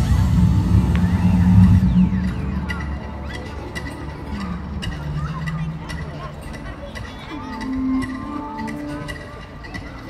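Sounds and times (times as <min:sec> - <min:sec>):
sweeping whooshes: 0:00.0 - 0:03.6
deep bass drone: 0:00.0 - 0:06.4.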